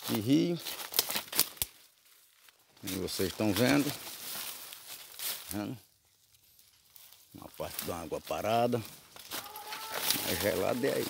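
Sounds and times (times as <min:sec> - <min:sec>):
dry leaves and twigs crackling: 0:00.0 - 0:11.0.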